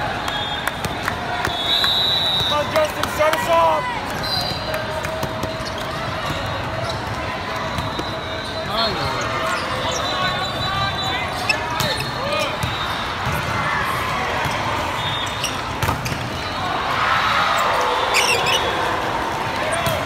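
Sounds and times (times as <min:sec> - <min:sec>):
volleyballs hit and bouncing: 0:00.7 - 0:01.6, 0:02.4 - 0:08.2, 0:11.5 - 0:16.7, 0:19.2 - 0:20.0
high whistle blasts: 0:01.4 - 0:02.7, 0:14.9 - 0:15.6
sneakers squeaking on court: 0:04.2 - 0:13.5, 0:14.4 - 0:16.6.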